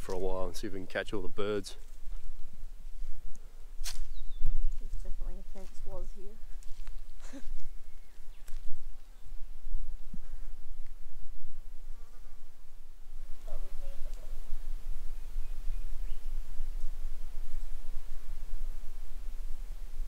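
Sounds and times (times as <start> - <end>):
insects buzzing: 0.0 - 20.0.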